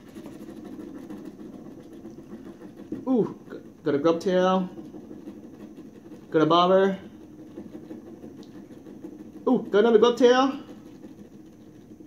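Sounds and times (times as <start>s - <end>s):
scratch card being scratched: 0.0s - 12.0s.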